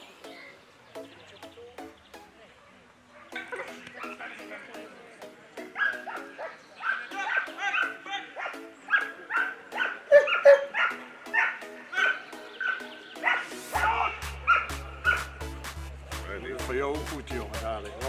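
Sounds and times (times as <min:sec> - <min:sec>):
dog barking: 0:03.1 - 0:04.4, 0:05.8 - 0:15.3
background music with low beat: 0:03.4 - 0:18.0.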